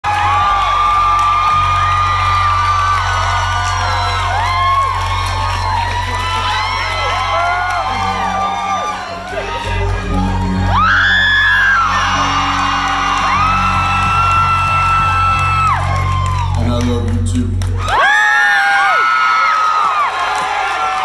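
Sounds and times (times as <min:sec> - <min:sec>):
bass guitar: 0:00.0 - 0:18.0
audience whooping and cheering: 0:00.0 - 0:21.0
electric guitar: 0:00.1 - 0:18.0.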